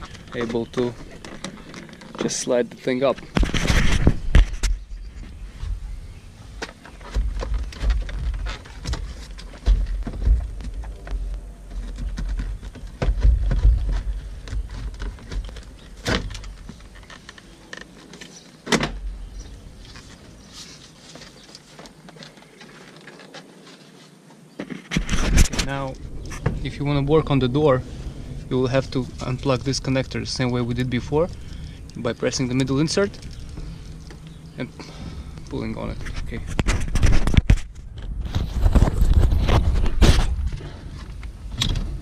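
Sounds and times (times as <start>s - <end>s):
plastic panel bumping and rubbing: 6.6s - 19.5s, 24.6s - 27.2s.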